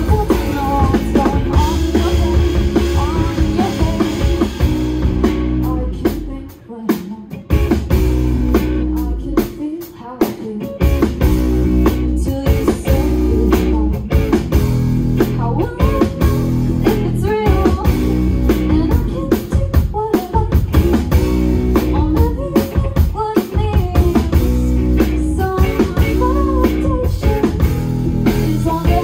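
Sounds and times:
woman singing: 0:00.0 - 0:07.8, 0:08.5 - 0:14.5, 0:15.2 - 0:29.0
rock band playing live: 0:00.0 - 0:29.0.

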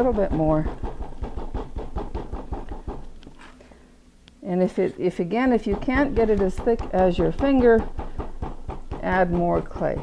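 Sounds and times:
hand tapping clay: 0:05.4 - 0:10.0.

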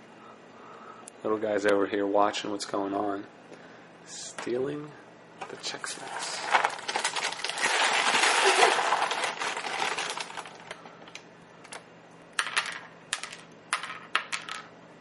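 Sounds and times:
cereal pieces rattling on plastic tray: 0:05.9 - 0:10.8.

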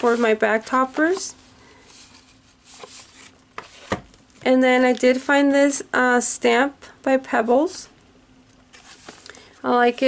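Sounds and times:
plastic packs rubbing and rustling: 0:00.0 - 0:04.0.

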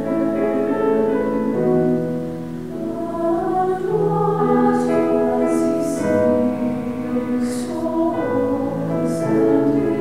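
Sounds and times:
women's choir singing: 0:00.0 - 0:10.0.

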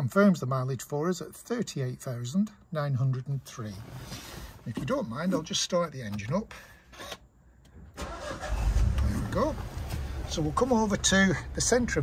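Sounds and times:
starter motor cranking: 0:08.0 - 0:09.2
car engine running: 0:08.2 - 0:12.0.

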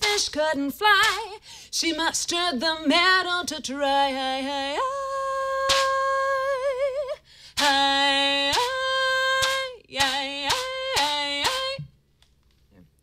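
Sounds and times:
woman singing unaccompanied: 0:00.0 - 0:12.0
sharp percussive hits: 0:09.4 - 0:11.8.

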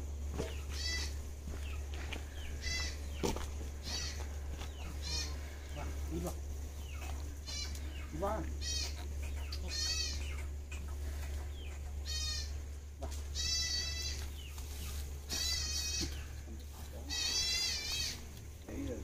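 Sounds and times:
goat bleating: 0:00.6 - 0:01.2, 0:02.5 - 0:03.0, 0:03.8 - 0:06.0, 0:08.6 - 0:10.3, 0:12.0 - 0:14.4, 0:15.3 - 0:16.4, 0:17.0 - 0:18.4.

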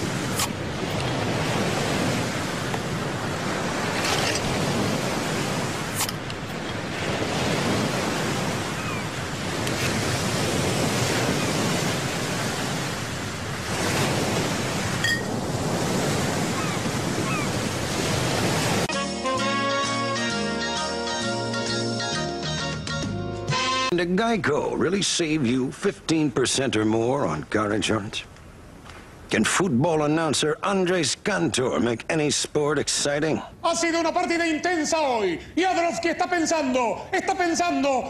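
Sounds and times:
ocean surf washing onto beach: 0:00.0 - 0:18.9
music: 0:18.9 - 0:24.0.

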